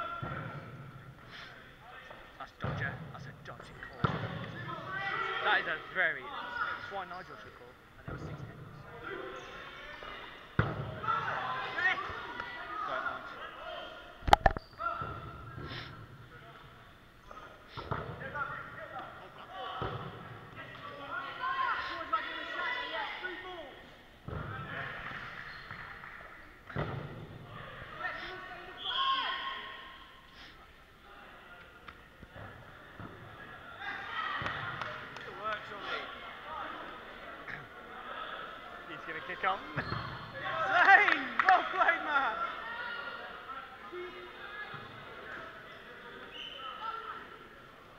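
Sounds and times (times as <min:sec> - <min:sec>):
balls bouncing on hall floor: 0:03.9 - 0:04.6, 0:24.2 - 0:27.4
dodgeballs hitting: 0:26.6 - 0:27.4.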